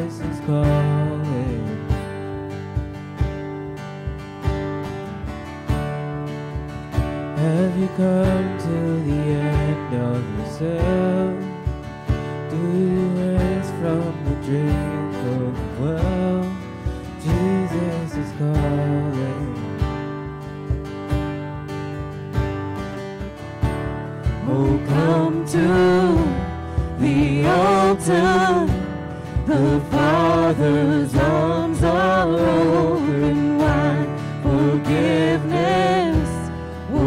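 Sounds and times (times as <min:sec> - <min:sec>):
people singing: 0:00.0 - 0:01.9, 0:12.5 - 0:16.6, 0:24.4 - 0:37.0
worship band playing: 0:22.9 - 0:37.0.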